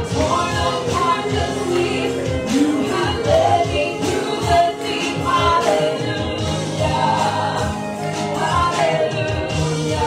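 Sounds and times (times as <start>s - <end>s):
choir singing gospel: 0.0s - 10.0s
keyboard chords: 0.0s - 10.0s.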